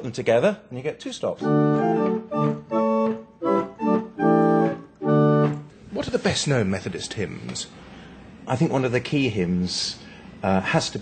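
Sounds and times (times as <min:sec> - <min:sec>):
chamber organ playing chords: 0:01.3 - 0:05.8.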